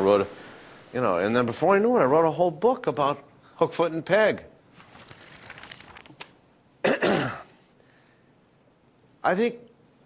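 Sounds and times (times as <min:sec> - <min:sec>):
man clearing his throat: 0:06.8 - 0:07.6.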